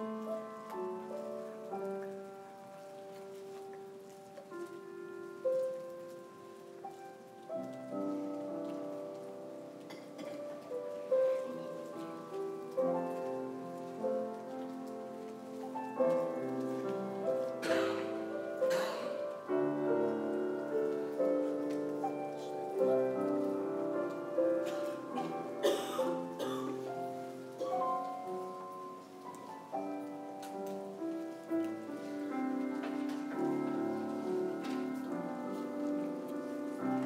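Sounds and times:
slow keyboard chords: 0:00.0 - 0:37.0.

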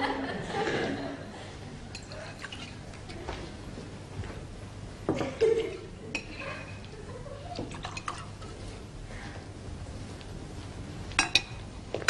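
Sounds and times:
liquid pouring into a glass: 0:07.6 - 0:08.4.

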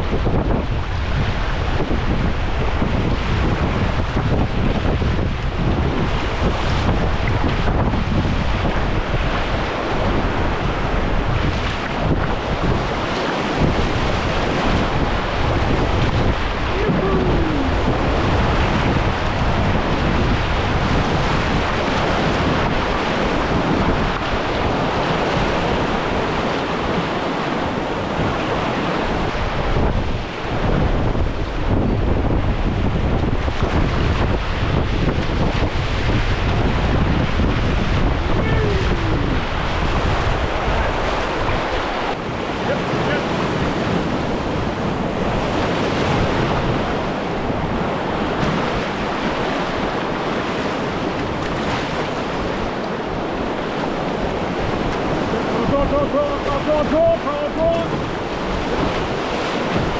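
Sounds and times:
wind buffeting microphone: 0:00.0 - 0:59.9
river rapids roaring: 0:08.7 - 0:30.6, 0:35.8 - 0:59.9.

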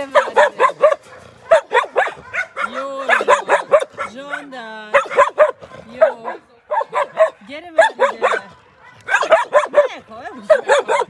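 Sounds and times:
large dog barking: 0:00.0 - 0:11.0.

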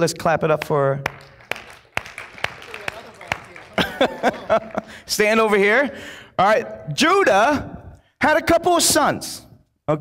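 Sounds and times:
scattered hand clapping: 0:00.5 - 0:05.1.

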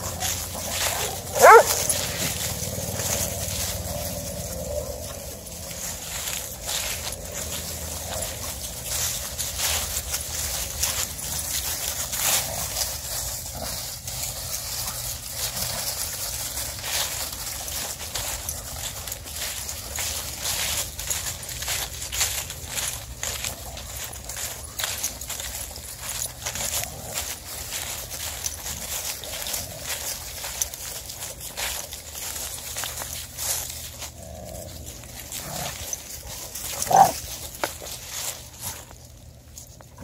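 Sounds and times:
dogs growling: 0:00.0 - 0:14.4, 0:25.3 - 0:30.8, 0:33.4 - 0:37.8
paws crunching through dry leaves: 0:00.0 - 0:40.0
dog barking: 0:00.9 - 0:02.0.

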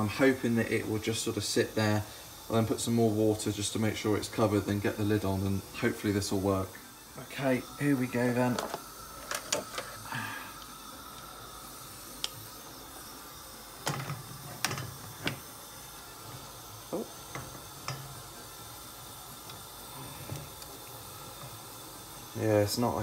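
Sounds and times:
water boiling with hiss: 0:00.0 - 0:23.0.

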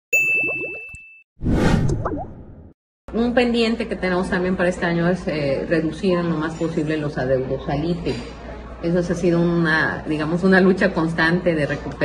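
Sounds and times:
bright ding: 0:00.2 - 0:01.2
whoosh: 0:01.4 - 0:02.7.

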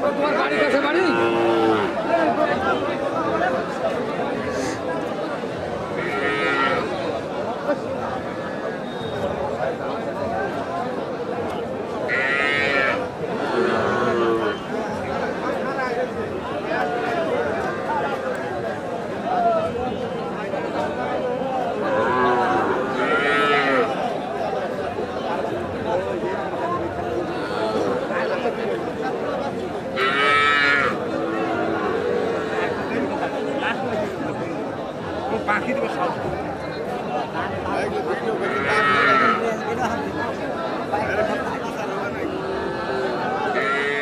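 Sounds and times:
crowd chatter: 0:00.0 - 0:44.0
calf mooing: 0:30.0 - 0:32.5.

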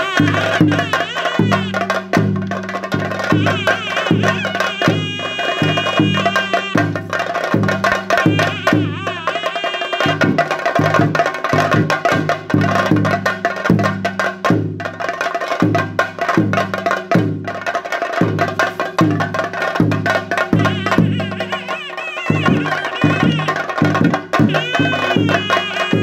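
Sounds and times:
high wavering melody: 0:00.0 - 0:02.0, 0:03.2 - 0:10.4, 0:20.4 - 0:26.0
deep drum beating steady rhythm: 0:00.0 - 0:26.0
rapid clattering drum strokes: 0:00.0 - 0:26.0.

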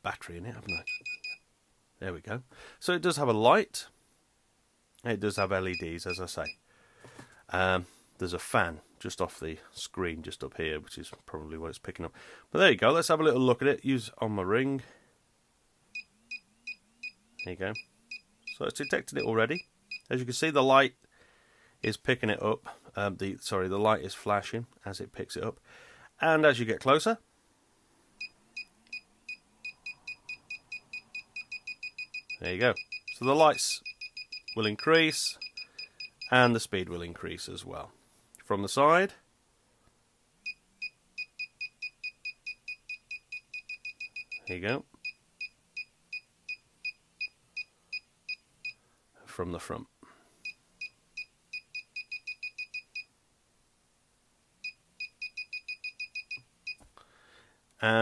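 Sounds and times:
metal detector high-pitched beeps: 0:00.7 - 0:01.4, 0:28.6 - 0:36.4, 0:54.6 - 0:56.8.

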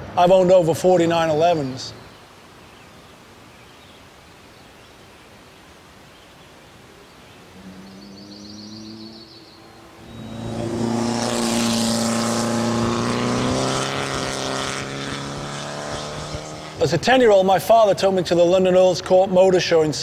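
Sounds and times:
car engine running: 0:08.0 - 0:16.7.

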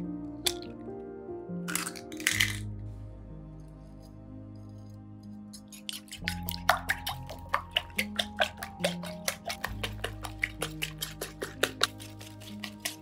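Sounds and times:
soft background music: 0:00.0 - 0:13.0
whisk beating eggs in bowl: 0:05.6 - 0:13.0.

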